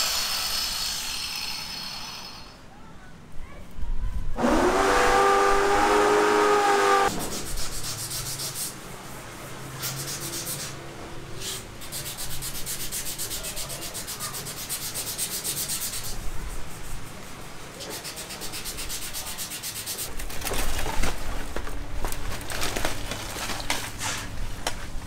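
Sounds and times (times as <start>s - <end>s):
rapid scraping strokes: 4.4s - 10.8s, 11.4s - 20.2s.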